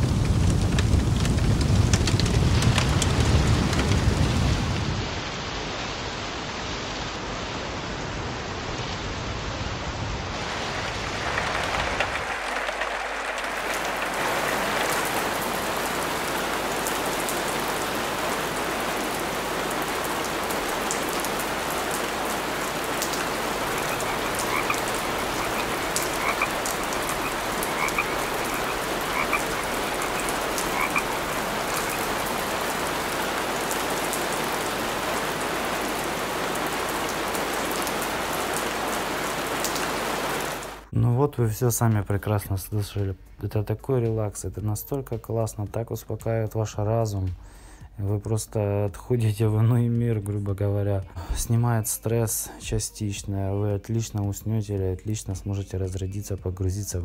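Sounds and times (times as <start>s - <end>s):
steady hiss of rain: 0.0s - 57.0s
frogs croaking: 11.1s - 40.7s.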